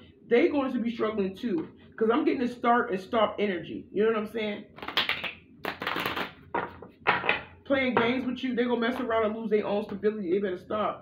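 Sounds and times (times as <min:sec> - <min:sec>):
cards being shuffled: 0:04.8 - 0:06.8.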